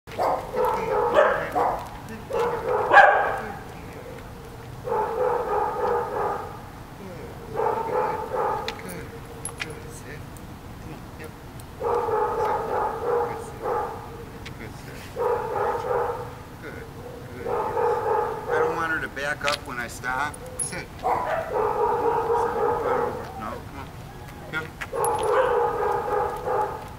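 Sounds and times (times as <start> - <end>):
dog barking: 0.1 - 3.7, 4.4 - 6.6, 7.5 - 9.6, 11.8 - 14.2, 15.2 - 16.4, 17.0 - 18.9, 20.4 - 23.6, 24.9 - 26.9.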